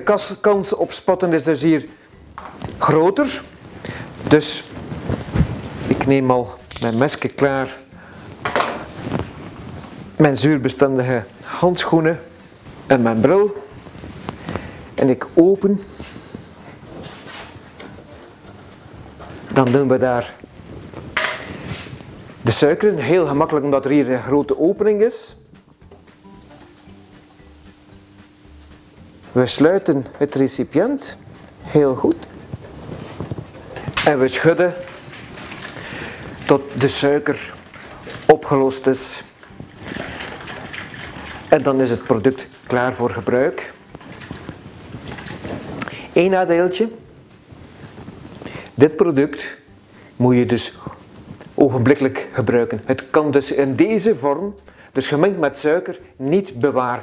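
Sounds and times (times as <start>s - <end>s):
plastic bottle rustling crackle: 2.4s - 10.2s, 11.2s - 15.2s, 15.8s - 23.5s, 29.2s - 48.7s
short scraping rustle: 15.9s - 17.6s.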